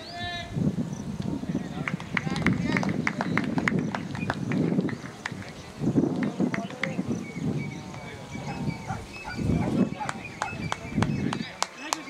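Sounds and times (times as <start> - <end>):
people talking: 1.2 - 4.2, 4.8 - 12.0.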